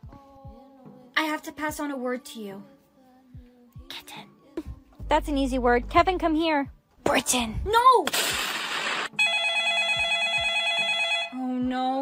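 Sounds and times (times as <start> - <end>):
trilling telephone ringtone: 9.2 - 11.4.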